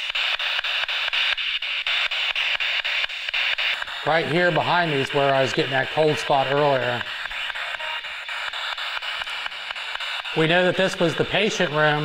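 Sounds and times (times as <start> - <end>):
radio static: 0.0 - 12.0.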